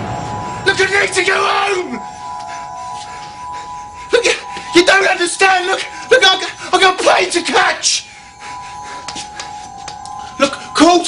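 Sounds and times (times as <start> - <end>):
soft sustained chord: 0.0 - 11.0.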